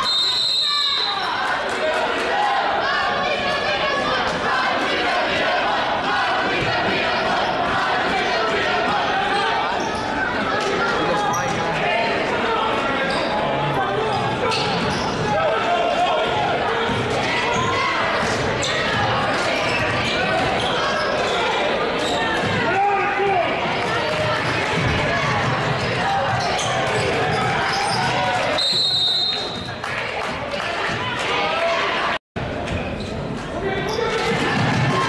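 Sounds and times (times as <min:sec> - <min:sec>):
spectators' voices echoing: 0:00.0 - 0:35.0.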